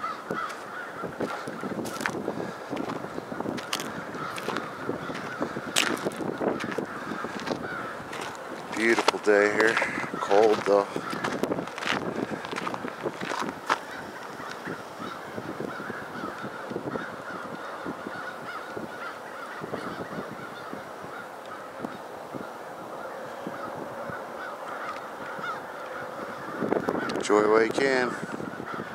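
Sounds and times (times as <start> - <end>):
flock of birds honking: 0.0 - 28.9.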